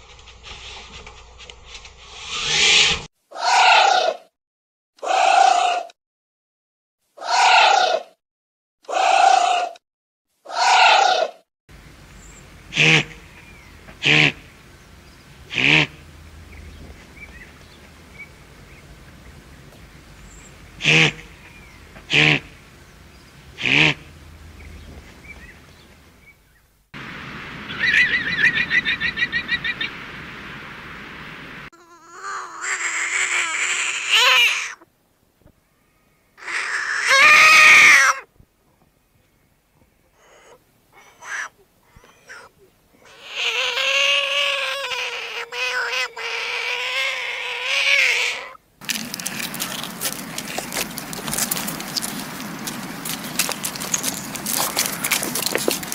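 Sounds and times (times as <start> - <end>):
guanaco cries and trill: 3.3 - 4.2, 7.2 - 8.0, 10.5 - 11.3, 31.8 - 34.8, 36.4 - 38.3, 40.1 - 52.1
frog croaking and squawking: 31.8 - 34.8, 36.4 - 38.2, 40.2 - 48.6.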